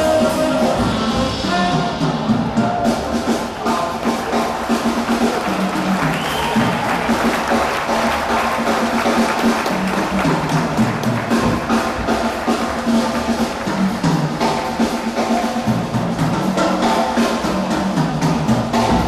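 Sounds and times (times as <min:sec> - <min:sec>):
live jazz quartet: 0:00.0 - 0:19.0
walking upright bass: 0:00.0 - 0:19.0
audience applause: 0:03.2 - 0:15.6.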